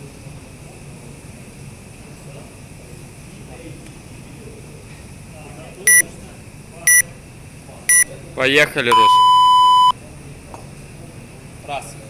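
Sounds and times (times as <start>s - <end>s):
timer beeps: 8.9s - 10.0s.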